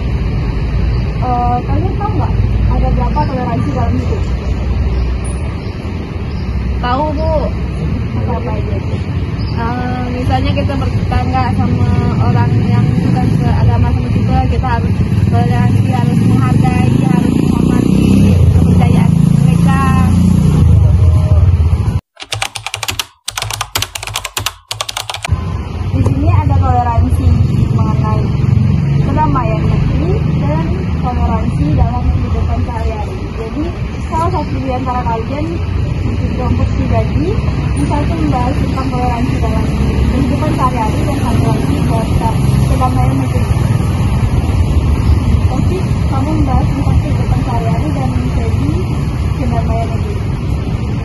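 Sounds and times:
rapid typing clicks: 0:22.2 - 0:25.3.

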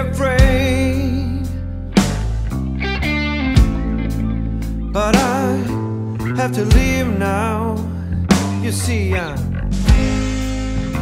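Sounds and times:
bass guitar: 0:00.0 - 0:11.0
electric guitar chords: 0:00.0 - 0:11.0
drum hit: 0:09.8 - 0:11.0.

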